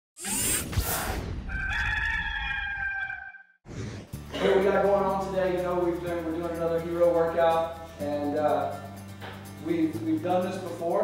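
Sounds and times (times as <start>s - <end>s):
rooster crowing: 1.5s - 3.5s.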